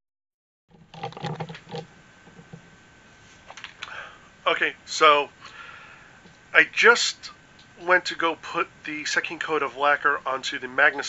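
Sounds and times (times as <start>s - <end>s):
camera handling bumps and rustling: 0.7s - 2.7s
faint high whine: 0.8s - 11.0s.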